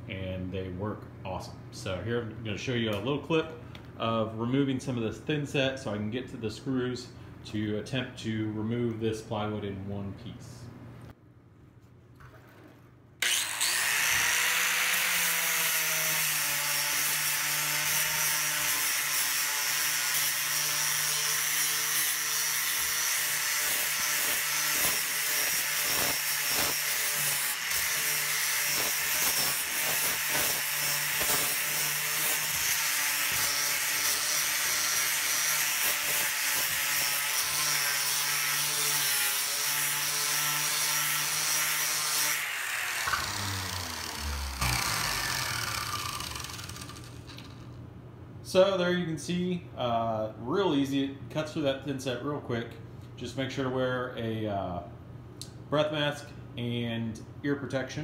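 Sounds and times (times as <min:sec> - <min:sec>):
angle grinder grinding mortar: 0:13.2 - 0:47.6.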